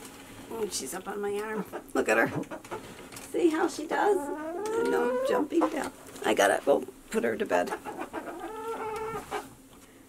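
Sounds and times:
hen clucking: 1.4 - 6.3, 7.5 - 9.6.

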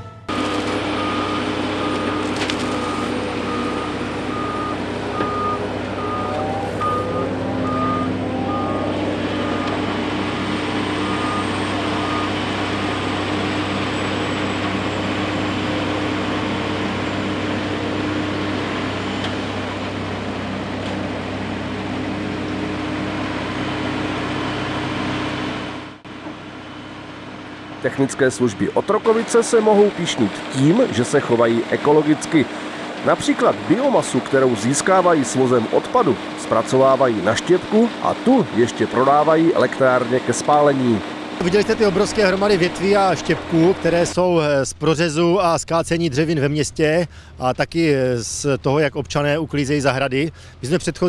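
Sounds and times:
reversing alarm beeping: 0.0 - 13.0
diesel engine running: 0.0 - 51.0.

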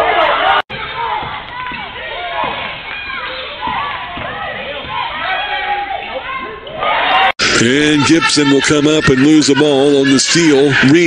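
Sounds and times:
scattered voices: 7.4 - 11.0.

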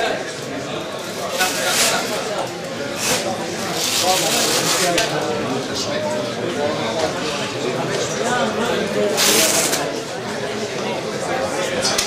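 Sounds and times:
people talking in echoing hall: 0.0 - 12.0.

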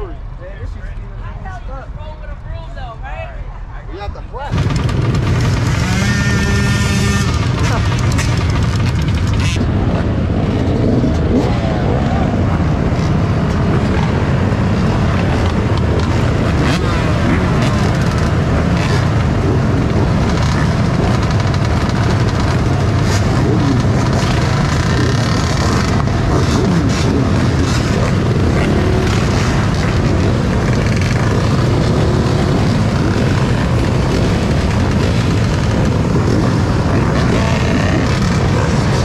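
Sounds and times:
dirt bike engines revving: 3.4 - 39.0.

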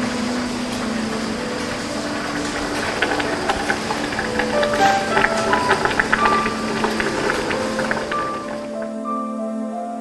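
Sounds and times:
rushing roar of molten metal pouring: 0.0 - 8.9
low humming tones: 0.0 - 10.0.

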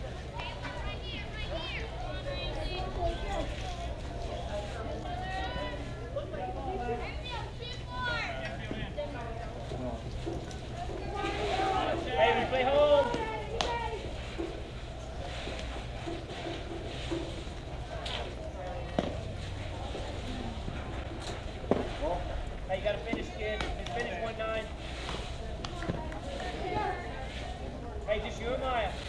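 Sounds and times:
voices calling and shouting: 0.0 - 29.0.

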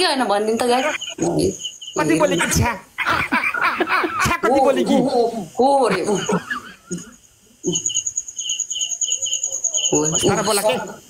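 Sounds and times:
cricket chirping trill: 0.0 - 11.0.

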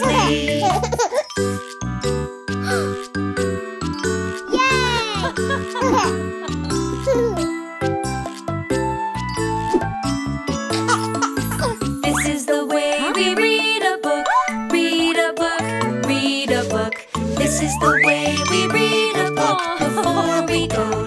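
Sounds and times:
chiming lullaby music: 0.0 - 21.0
cartoon child exclaiming: 4.5 - 5.4.

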